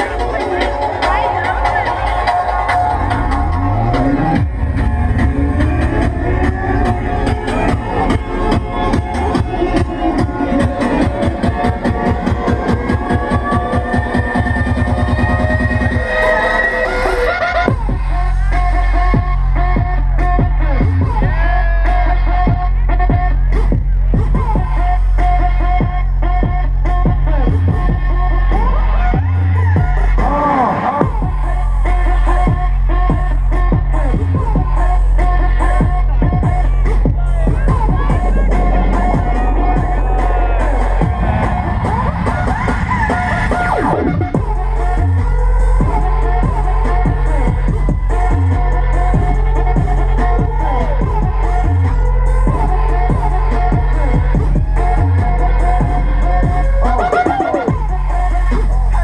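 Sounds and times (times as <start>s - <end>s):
electronic dance music: 0.0s - 59.0s.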